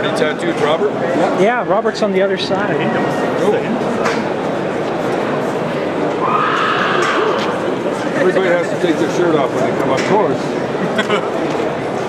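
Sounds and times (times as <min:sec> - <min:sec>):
crowd murmur: 0:00.0 - 0:12.0.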